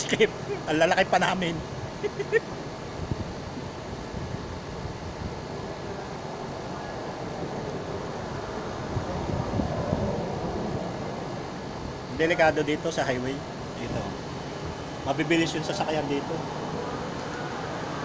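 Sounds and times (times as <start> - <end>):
highway traffic noise: 0.0 - 18.0.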